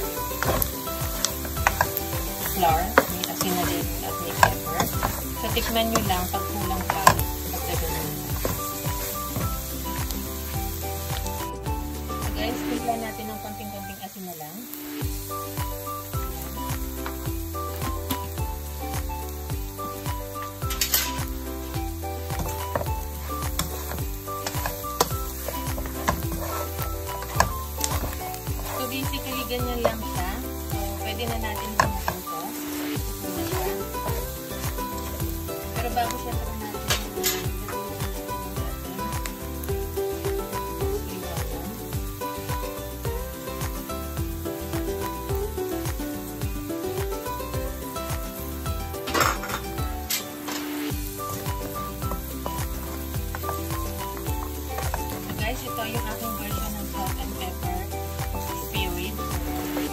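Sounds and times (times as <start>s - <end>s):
background music with bass line: 0.0s - 14.1s, 14.9s - 59.9s
meat sizzling in a pan: 0.0s - 59.9s
spatula scraping a pan: 0.2s - 9.4s, 22.5s - 30.1s, 30.7s - 34.4s.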